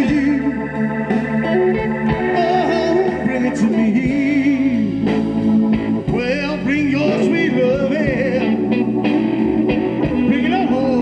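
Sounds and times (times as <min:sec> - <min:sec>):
drums: 0:00.0 - 0:11.0
upright bass: 0:00.0 - 0:11.0
wavering lead melody: 0:00.0 - 0:11.0.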